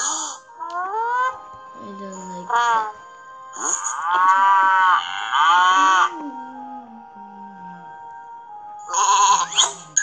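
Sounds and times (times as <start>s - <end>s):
cartoon cow mooing: 3.6s - 6.1s, 8.9s - 9.8s.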